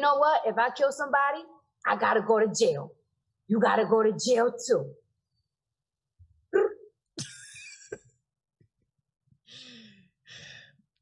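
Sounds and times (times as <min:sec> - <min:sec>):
person sighing and exhaling: 0:09.5 - 0:10.9.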